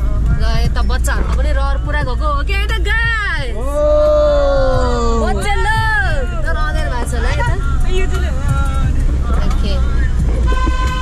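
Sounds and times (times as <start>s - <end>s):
people's voices: 0.0s - 11.0s
road and engine rumble: 0.0s - 11.0s
vehicle horn blast: 10.4s - 11.0s.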